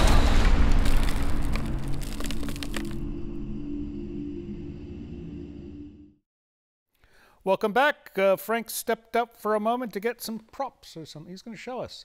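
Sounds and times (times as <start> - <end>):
sharp crackling and cracking: 0.0 - 3.0
heavy low rumble: 0.0 - 5.9.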